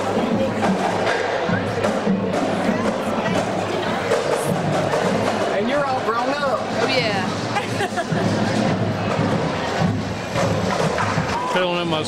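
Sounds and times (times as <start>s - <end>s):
people talking: 0.0s - 8.8s
music playing: 0.0s - 12.0s.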